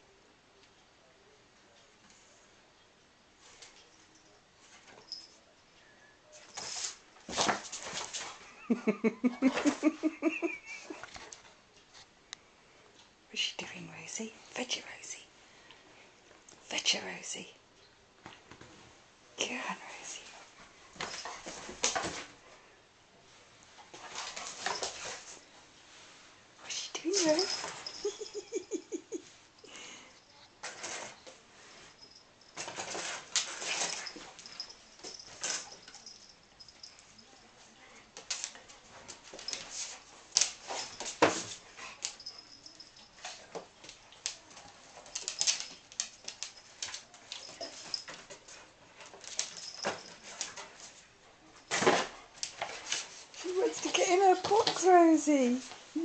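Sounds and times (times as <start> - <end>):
person whispering: 13.3 - 15.3, 16.7 - 17.6, 19.4 - 20.4, 26.6 - 27.5.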